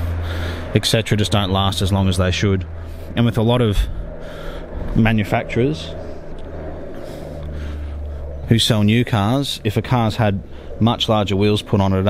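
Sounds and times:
motor vehicle rumble: 0.0s - 12.0s.

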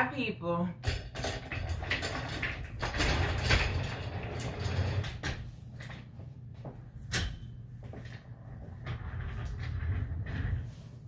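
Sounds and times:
low rumble: 6.4s - 11.0s.

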